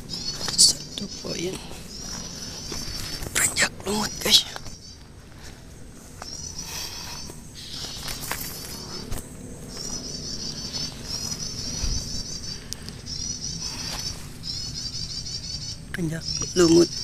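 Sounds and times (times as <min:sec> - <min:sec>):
rapid trilled bird calls: 0:00.0 - 0:05.1, 0:06.2 - 0:17.0.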